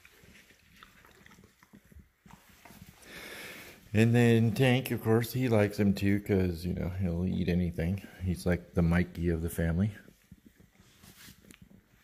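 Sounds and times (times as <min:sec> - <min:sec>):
dogs chewing treats: 0:00.0 - 0:03.2.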